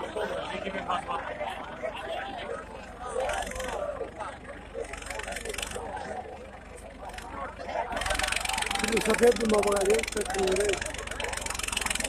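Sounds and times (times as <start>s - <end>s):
crowd voices: 0.0s - 12.0s
tractor diesel engine running: 0.0s - 12.0s.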